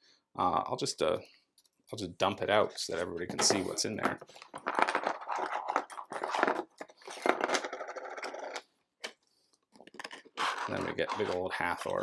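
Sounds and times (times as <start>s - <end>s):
plastic miniatures clattering: 3.2s - 12.0s.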